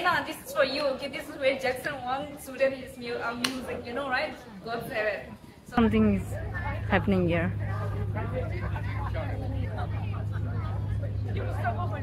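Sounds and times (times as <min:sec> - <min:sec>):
murmur of voices: 0:00.0 - 0:12.0
steady low hum: 0:05.5 - 0:12.0.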